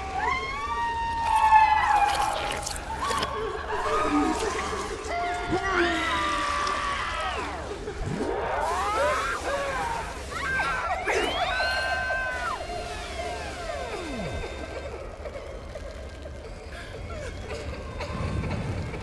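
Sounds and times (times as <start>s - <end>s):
constant low hum: 6.4s - 19.0s.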